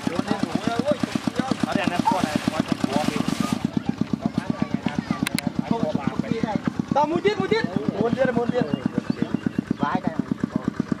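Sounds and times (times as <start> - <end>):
small engine puttering: 0.0 - 11.0.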